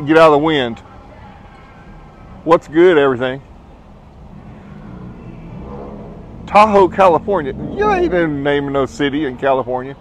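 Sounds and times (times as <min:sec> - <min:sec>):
vehicle engine rumble: 0:00.0 - 0:10.0.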